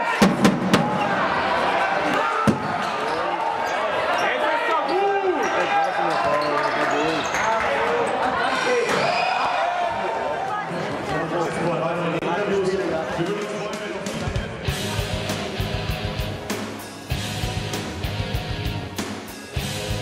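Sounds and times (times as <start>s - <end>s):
spectators talking: 0.0s - 17.2s.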